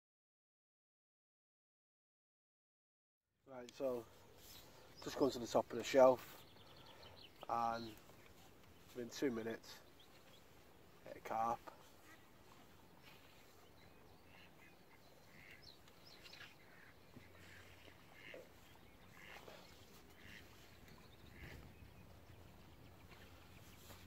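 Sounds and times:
distant ducks calling: 3.9s - 24.0s.

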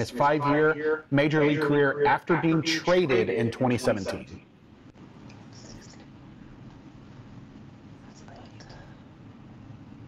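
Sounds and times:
person whispering: 8.1s - 9.0s.

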